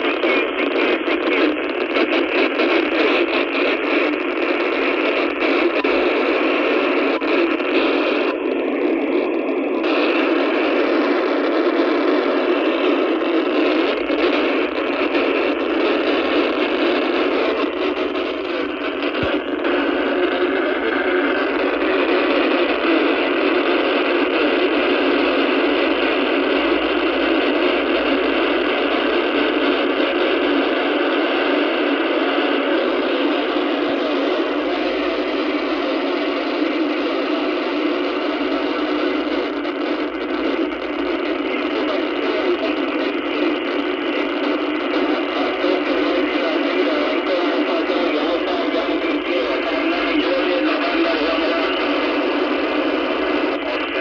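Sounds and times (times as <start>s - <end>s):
radio click: 0.0s - 9.1s, 9.8s - 24.5s, 33.3s - 54.0s
radio static hiss: 0.0s - 54.0s.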